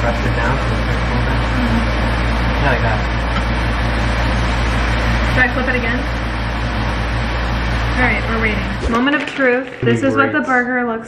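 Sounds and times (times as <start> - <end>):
range hood exhaust fan running: 0.0 - 11.0.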